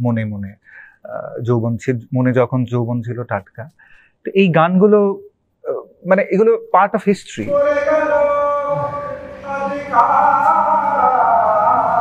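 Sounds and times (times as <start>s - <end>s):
group of voices singing: 7.4s - 12.0s
voice holding a sung note: 7.4s - 12.0s.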